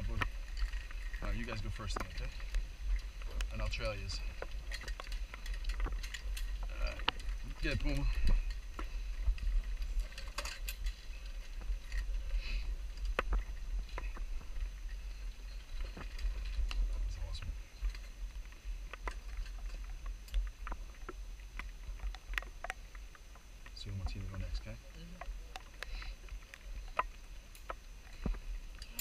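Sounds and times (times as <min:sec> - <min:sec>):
metallic clinks of harness gear: 0:00.0 - 0:18.2, 0:25.5 - 0:29.0.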